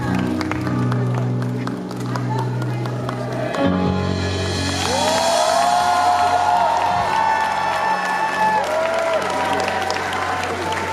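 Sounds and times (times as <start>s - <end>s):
audience applauding and cheering: 0.0s - 10.9s.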